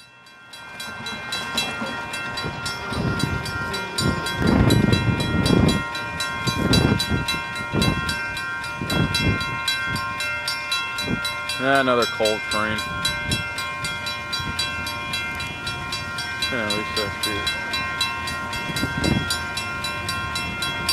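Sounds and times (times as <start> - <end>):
railroad crossing bell ringing: 0.0 - 20.9.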